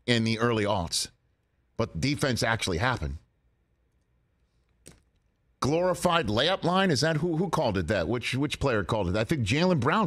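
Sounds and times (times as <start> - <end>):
man speaking: 0.0 - 1.2, 1.8 - 3.3, 5.6 - 10.0.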